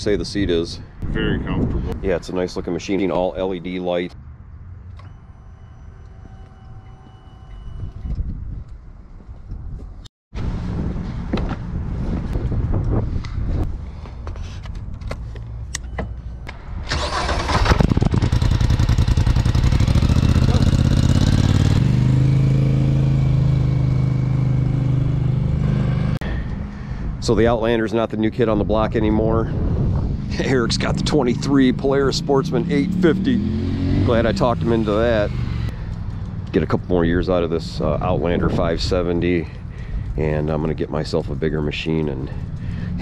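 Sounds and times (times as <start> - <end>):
atv engine starting and idling: 16.9 - 22.2.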